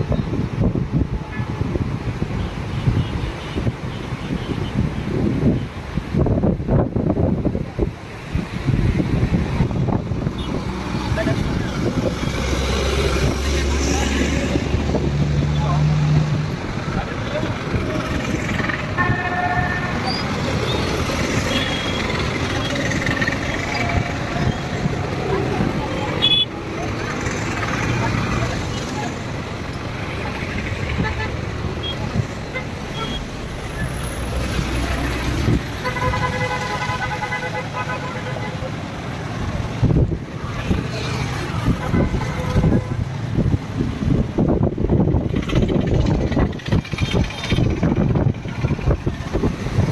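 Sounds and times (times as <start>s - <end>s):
vehicles passing on wet road: 0.0s - 49.9s
vehicle horn: 19.0s - 20.2s, 26.2s - 26.5s, 35.8s - 38.6s, 41.8s - 43.0s.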